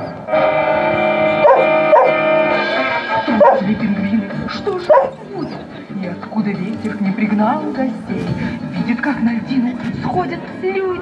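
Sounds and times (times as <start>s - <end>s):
music holding long chord: 0.0s - 9.0s
dog barking: 1.4s - 2.2s, 3.4s - 3.7s, 4.9s - 5.2s.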